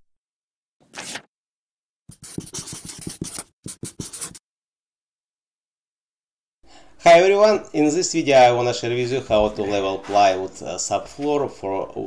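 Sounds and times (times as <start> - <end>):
marker pen scratching on paper: 2.1 - 4.4.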